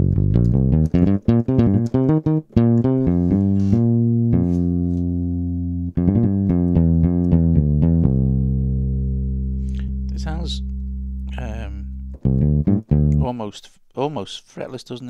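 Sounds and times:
electric bass notes: 0.0 - 13.4.

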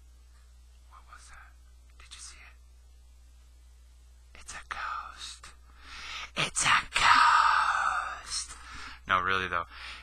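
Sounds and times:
low electrical hum: 0.0 - 10.0
man whispering: 0.8 - 2.6, 4.3 - 5.6, 6.2 - 10.0.

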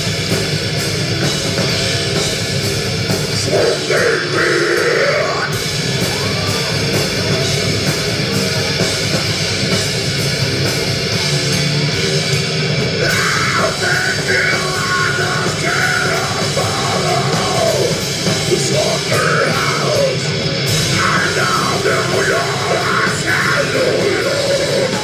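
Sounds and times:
drum kit beat: 0.0 - 25.0
live rock band playing: 0.0 - 25.0.

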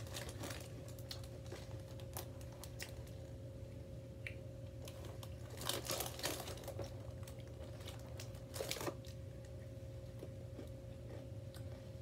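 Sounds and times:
snack packaging crinkling: 0.0 - 3.4, 4.8 - 9.6.

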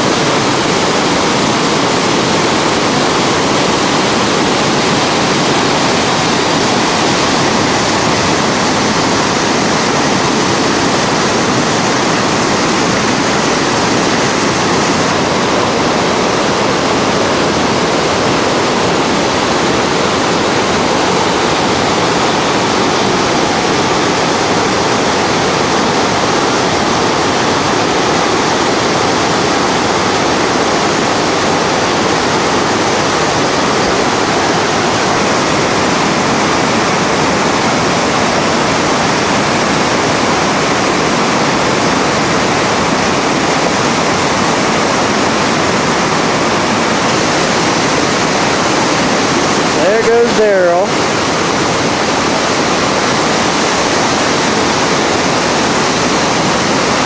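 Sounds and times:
river rapids rushing: 0.0 - 57.0.

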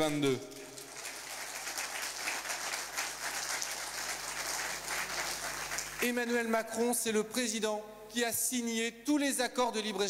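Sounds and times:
audience applauding: 0.5 - 6.2.

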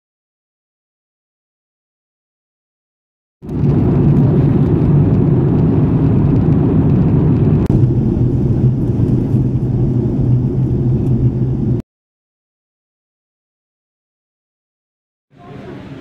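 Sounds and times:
jet cabin engine drone: 3.5 - 11.8, 15.4 - 16.0.

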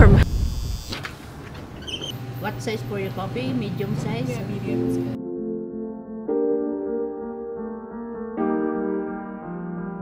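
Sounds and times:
quiet high electrical buzz: 0.0 - 5.1.

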